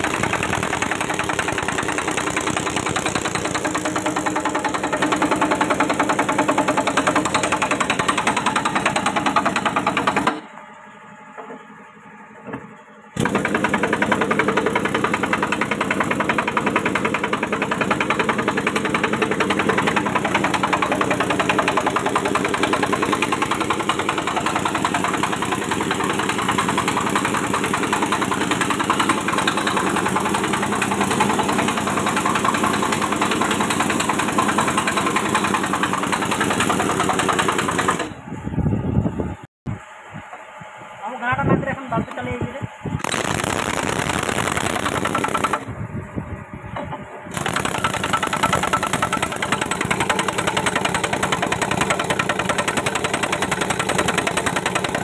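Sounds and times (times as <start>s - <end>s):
motor-driven machine running: 0.0s - 55.0s.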